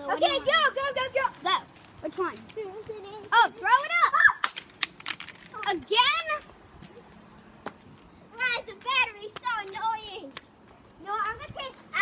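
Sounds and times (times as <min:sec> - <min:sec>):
children calling out: 0:02.8 - 0:04.5.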